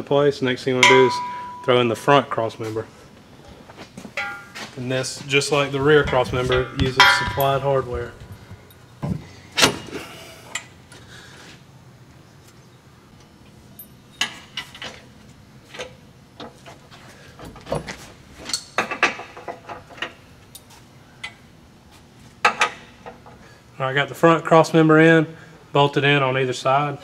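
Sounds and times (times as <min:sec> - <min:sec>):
metallic clinks and knocks: 0:00.8 - 0:01.8, 0:05.9 - 0:09.1
tool taps on metal: 0:06.0 - 0:08.7.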